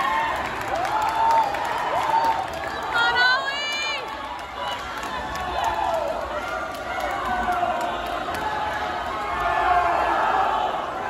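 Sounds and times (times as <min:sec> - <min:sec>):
echoing indoor pool din: 0:00.0 - 0:11.0
spectators shouting: 0:00.0 - 0:11.0.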